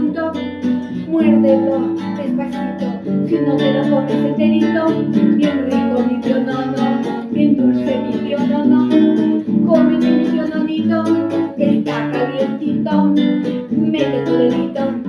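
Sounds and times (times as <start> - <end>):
acoustic guitar strumming: 0.0 - 15.0
woman singing: 0.0 - 15.0.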